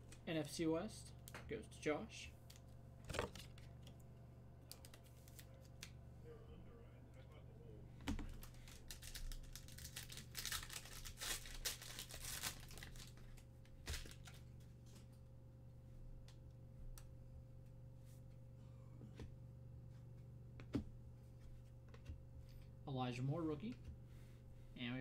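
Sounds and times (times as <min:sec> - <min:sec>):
foil pack tearing and crinkling: 0:08.3 - 0:13.2, 0:13.8 - 0:14.4.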